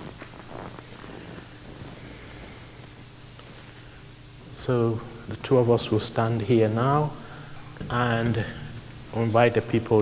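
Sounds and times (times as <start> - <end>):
low sound system hum: 0.0 - 10.0.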